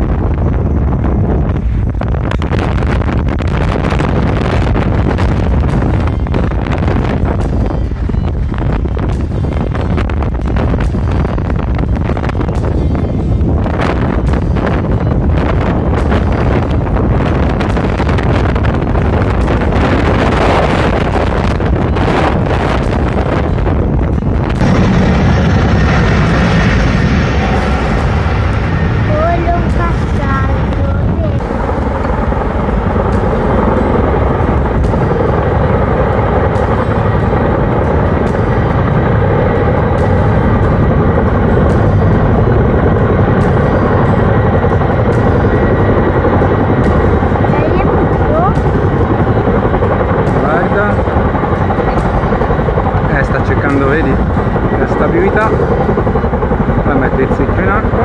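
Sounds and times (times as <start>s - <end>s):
helicopter rotors droning: 0.0s - 58.0s.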